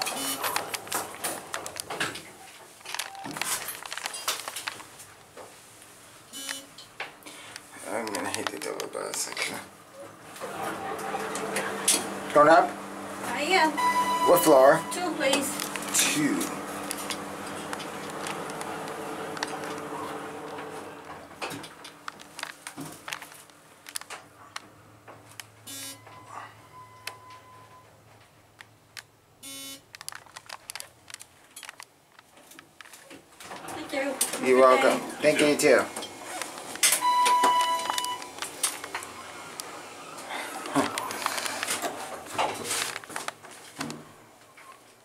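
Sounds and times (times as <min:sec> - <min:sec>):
elevator buzzy signal tone: 0:00.0 - 0:00.7, 0:06.3 - 0:06.8, 0:12.8 - 0:21.0, 0:25.6 - 0:28.0, 0:29.4 - 0:29.9, 0:36.8 - 0:41.5
elevator doors sliding: 0:00.0 - 0:03.8, 0:09.0 - 0:23.2, 0:33.4 - 0:43.2.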